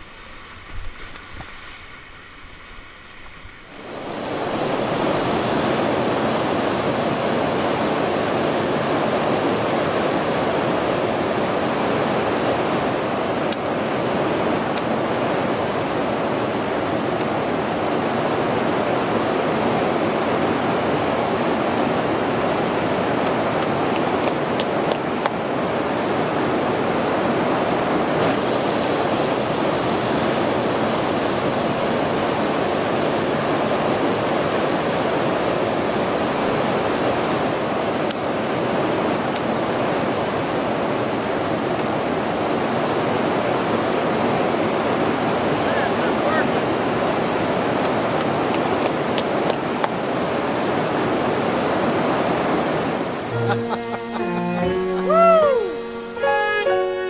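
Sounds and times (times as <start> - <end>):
rushing whitewater: 0.0 - 57.0
violin music: 53.2 - 57.0.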